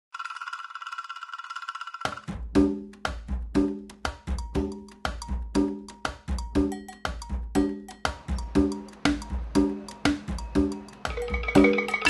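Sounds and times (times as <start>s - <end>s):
high bell-like trilling tone: 11.1s - 12.0s.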